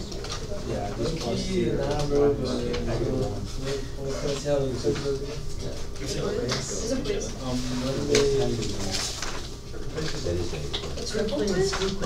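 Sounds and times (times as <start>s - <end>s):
students chattering: 0.0s - 12.0s.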